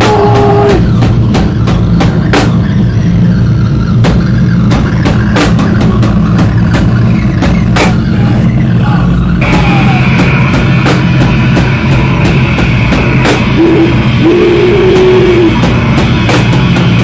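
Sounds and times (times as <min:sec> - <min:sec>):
screamed vocal: 0:00.0 - 0:01.0, 0:08.1 - 0:10.4, 0:13.5 - 0:15.6
distorted guitar and bass drone: 0:00.0 - 0:17.0
drum and cymbal hits: 0:00.0 - 0:17.0.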